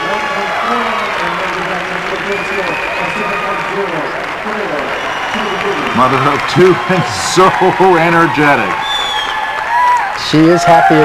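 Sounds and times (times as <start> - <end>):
audience applauding and cheering: 0.0 - 11.0.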